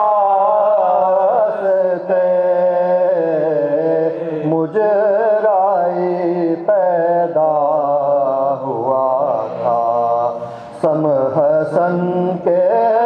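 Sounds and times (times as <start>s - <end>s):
man chanting unaccompanied: 0.0s - 13.0s.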